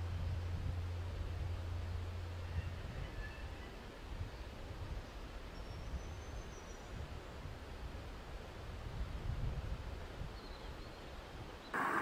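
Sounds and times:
calm river rumble: 0:00.0 - 0:02.9, 0:10.8 - 0:12.0.

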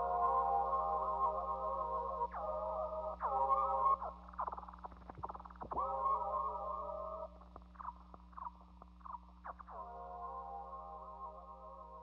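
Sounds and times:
amplifier hum: 0:00.0 - 0:12.0.

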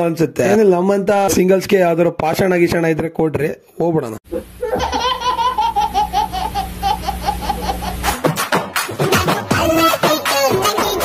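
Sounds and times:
baby laughing: 0:04.3 - 0:08.2.

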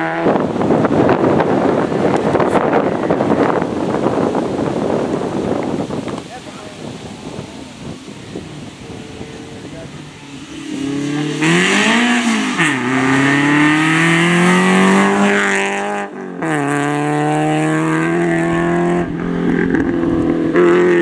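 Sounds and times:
rally car engine accelerating: 0:09.4 - 0:21.0.

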